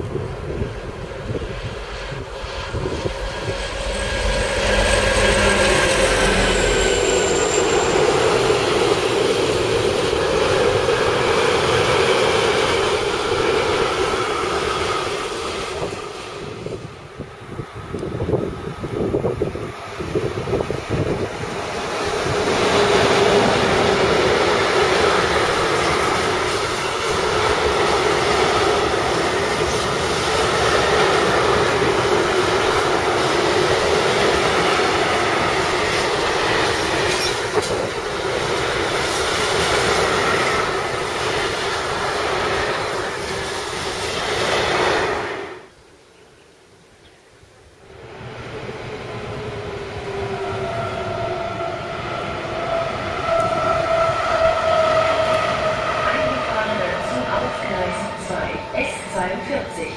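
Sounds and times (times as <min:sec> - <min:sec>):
diesel locomotive engine running: 0:00.0 - 0:16.6, 0:52.6 - 0:59.9
freight train rolling past: 0:00.0 - 0:45.8, 0:47.8 - 0:59.9.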